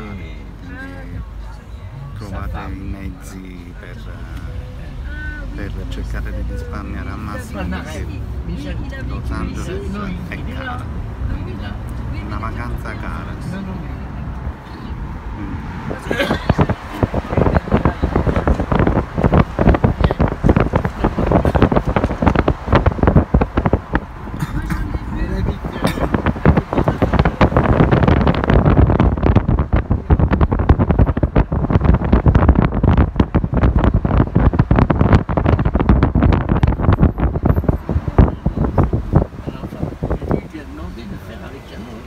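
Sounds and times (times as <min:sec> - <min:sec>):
car road noise: 0:00.0 - 0:42.0
wind buffeting microphone: 0:04.6 - 0:42.0.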